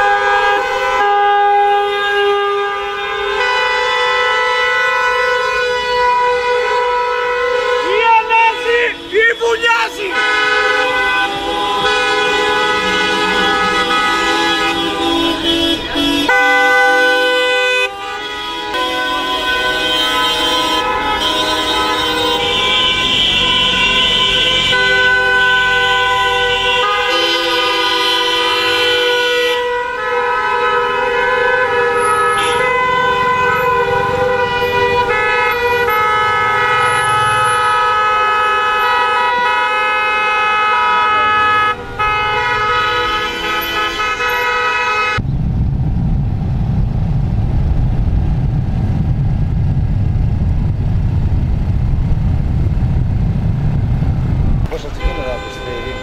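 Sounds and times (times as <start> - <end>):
car horns honking: 0.0 - 45.2, 54.6 - 56.0
low steady rumble: 45.2 - 54.7.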